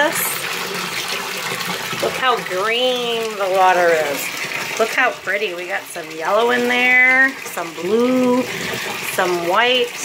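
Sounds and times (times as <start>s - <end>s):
bath tap running into water: 0.0s - 10.0s.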